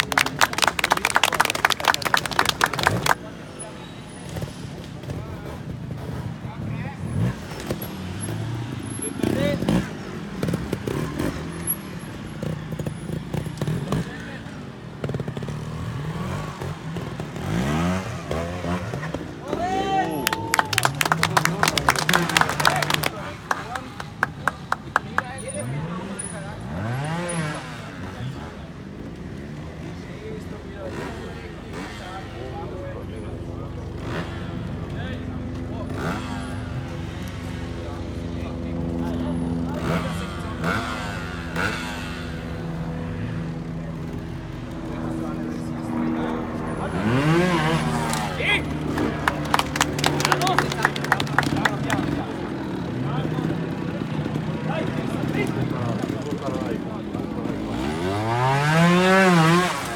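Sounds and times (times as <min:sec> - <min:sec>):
spectators clapping: 0:00.0 - 0:03.2, 0:19.8 - 0:25.4, 0:48.1 - 0:52.4
motorcycle engine revving: 0:00.1 - 0:59.9.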